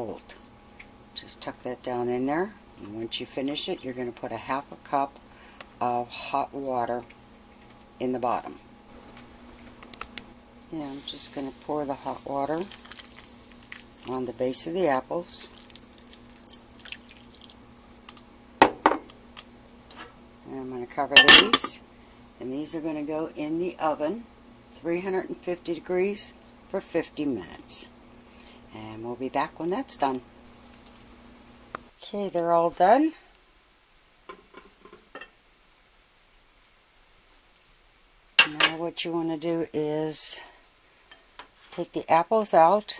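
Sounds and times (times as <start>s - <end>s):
water trickling into a dish: 12.6s - 14.2s, 15.5s - 17.6s.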